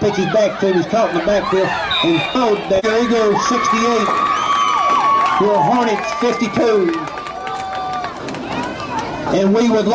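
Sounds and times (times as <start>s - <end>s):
football crowd shouting and cheering: 0.0s - 9.9s
held calls from crowd: 0.0s - 9.9s.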